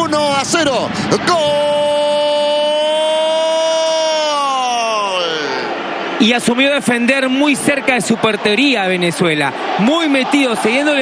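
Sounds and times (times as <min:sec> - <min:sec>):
commentator shouting: 0:00.0 - 0:11.0.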